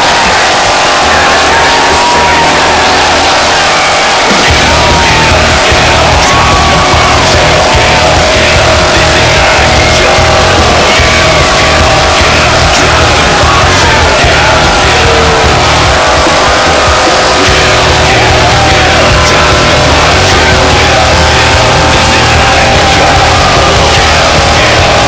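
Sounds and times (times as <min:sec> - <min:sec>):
loud rock music: 0:00.0 - 0:25.0.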